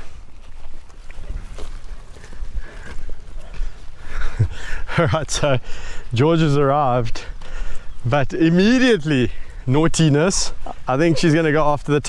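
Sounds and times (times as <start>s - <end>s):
footsteps on dirt: 0.0s - 12.0s.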